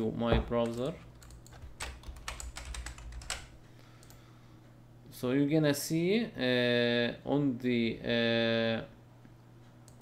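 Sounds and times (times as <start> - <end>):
faint steady low hum: 0.0 - 10.0
computer keyboard typing: 0.6 - 4.2.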